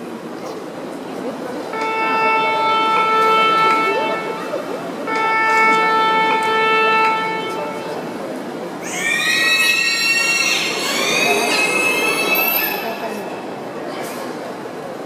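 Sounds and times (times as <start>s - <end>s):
dolphins whistling: 8.8s - 13.6s.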